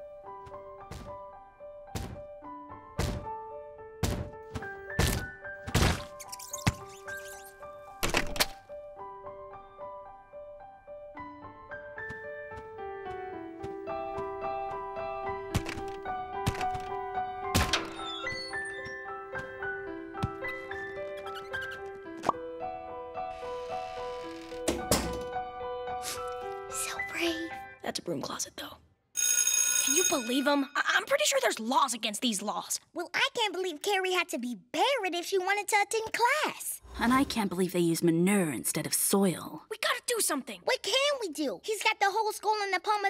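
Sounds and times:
background music with held notes: 0:00.0 - 0:27.9
thuds: 0:03.0 - 0:03.3, 0:04.0 - 0:06.1.

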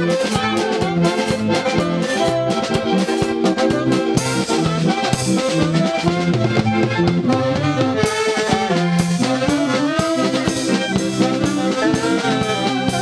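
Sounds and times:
accordions: 0:00.0 - 0:13.0
drum kit steady beat: 0:00.0 - 0:13.0
saxophones: 0:00.0 - 0:13.0.

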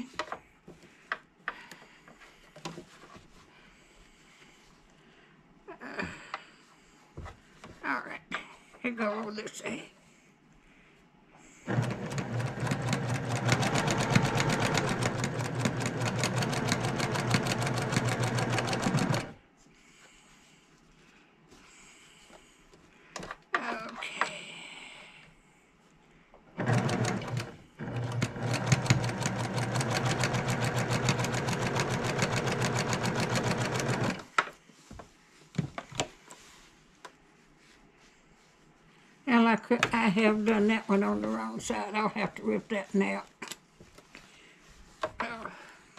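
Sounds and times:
sewing machine stitching: 0:11.7 - 0:19.4, 0:26.6 - 0:34.3.

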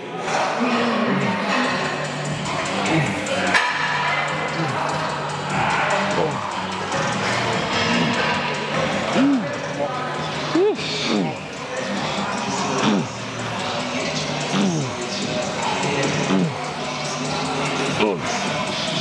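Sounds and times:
music with vocals and bass line: 0:00.1 - 0:19.0.

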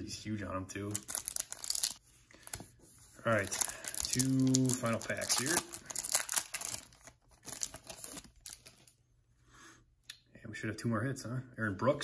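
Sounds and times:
foil wrapper crinkling: 0:00.9 - 0:02.6, 0:03.3 - 0:08.9.

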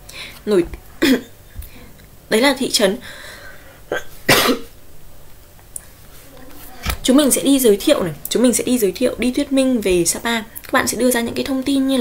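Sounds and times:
woman coughing: 0:01.0 - 0:01.3, 0:03.9 - 0:04.7.

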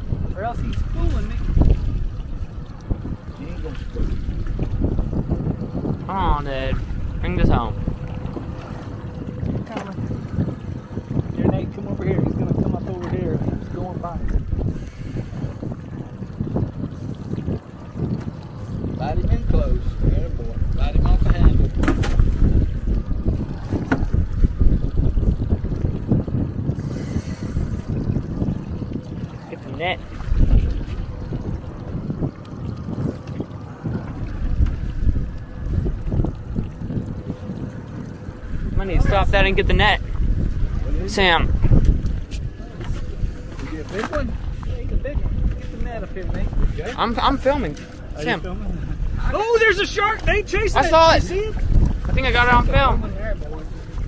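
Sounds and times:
water slapping boat hull: 0:00.0 - 0:54.0
wind on microphone: 0:00.0 - 0:54.0.

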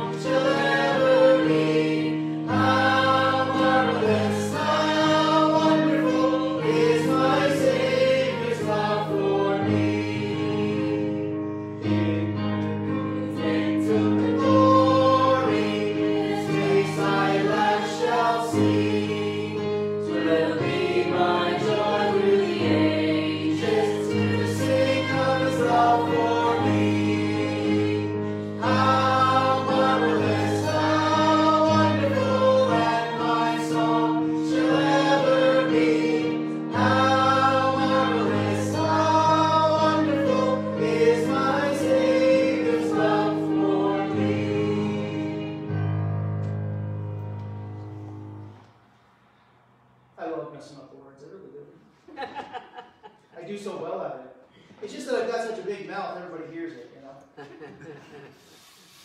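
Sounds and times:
voices singing a hymn: 0:00.0 - 0:46.3.

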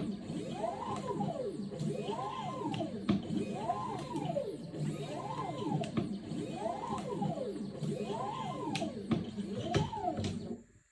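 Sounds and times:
stepper motors whining: 0:00.0 - 0:10.6.

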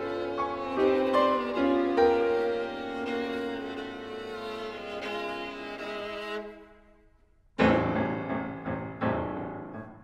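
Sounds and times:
loud piano with deep bass notes: 0:07.6 - 0:10.0.

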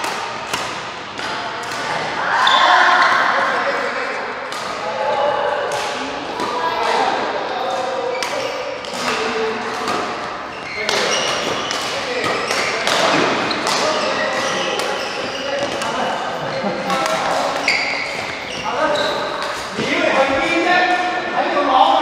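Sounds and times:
rackets hitting shuttlecock: 0:00.0 - 0:02.6, 0:05.6 - 0:16.2.

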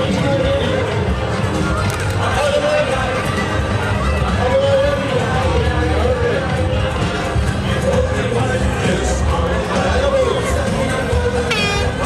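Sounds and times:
crowd voices: 0:00.0 - 0:12.0
loud parade music: 0:00.0 - 0:12.0
short horn blast: 0:11.4 - 0:12.0.

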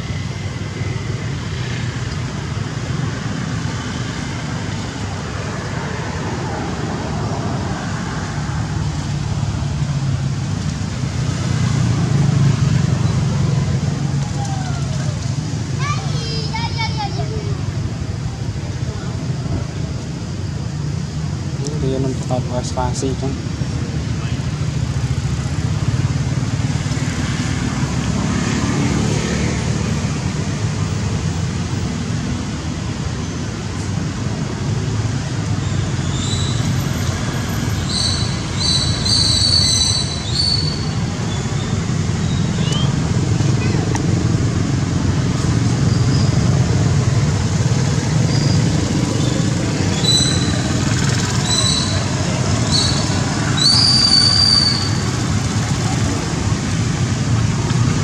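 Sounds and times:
baby monkey squealing: 0:49.9 - 0:50.6, 0:51.4 - 0:52.0, 0:52.7 - 0:55.0.

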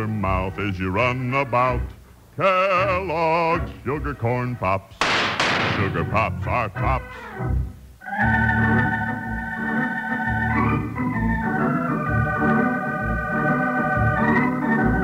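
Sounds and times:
held organ chords: 0:00.0 - 0:15.0.

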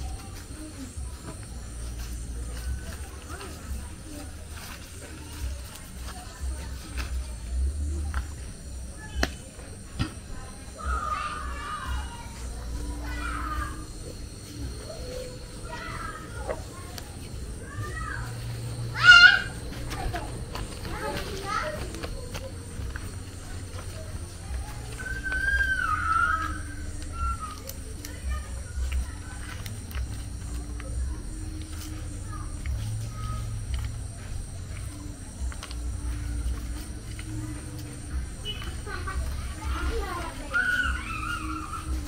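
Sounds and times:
children calling and playing: 0:00.0 - 0:42.0
steady low hum: 0:00.0 - 0:42.0
child shouting: 0:10.8 - 0:12.4, 0:18.9 - 0:19.6, 0:25.1 - 0:27.6, 0:39.6 - 0:42.0.

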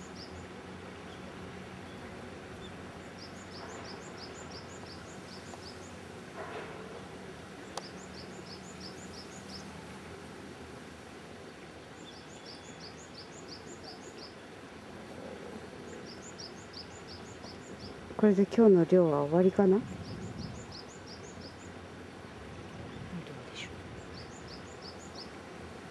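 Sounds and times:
bird chirping: 0:00.0 - 0:06.0, 0:07.6 - 0:09.7, 0:11.9 - 0:14.4, 0:15.8 - 0:18.0, 0:19.8 - 0:21.8, 0:22.7 - 0:25.4
faint steady hiss: 0:00.0 - 0:25.9.

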